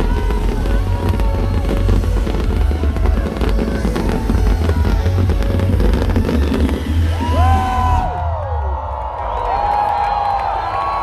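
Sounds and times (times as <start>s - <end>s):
fireworks crackling and popping: 0.0s - 8.0s
electronic dance music with heavy bass: 0.0s - 8.2s.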